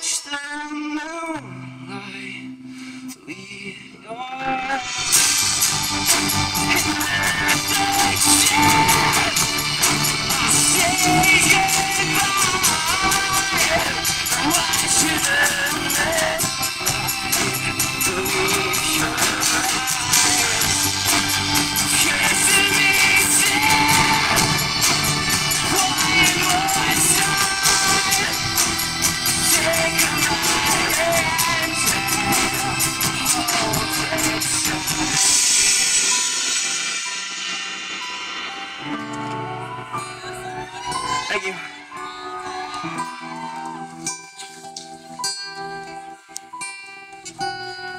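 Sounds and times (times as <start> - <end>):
person singing: 0.0 - 37.1, 38.8 - 44.7
cymbal crash: 4.8 - 10.8, 15.9 - 41.1
audience whooping: 4.8 - 35.7, 39.8 - 44.4
electric bass: 5.0 - 35.4
ticking percussion beat: 5.1 - 39.4.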